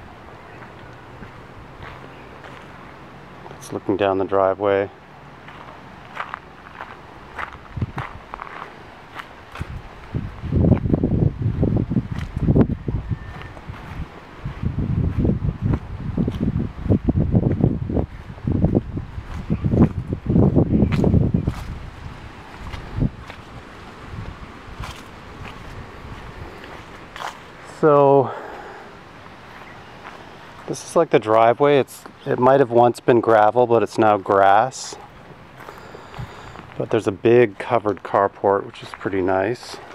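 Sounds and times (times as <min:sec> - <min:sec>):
footsteps on grass and gravel: 0:00.5 - 0:02.8, 0:05.4 - 0:32.6, 0:34.1 - 0:39.9
low rumbling on microphone: 0:06.8 - 0:08.6, 0:09.5 - 0:29.0.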